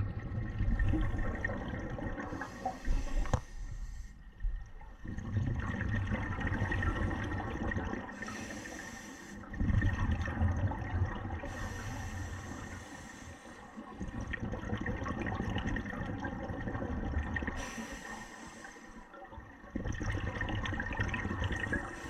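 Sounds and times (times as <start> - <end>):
exhaled bubbles rumbling: 0.0 - 8.4, 9.4 - 12.7, 13.8 - 17.8, 19.1 - 22.0
regulator inhalation hiss: 8.2 - 9.5, 11.5 - 13.6, 17.6 - 19.0.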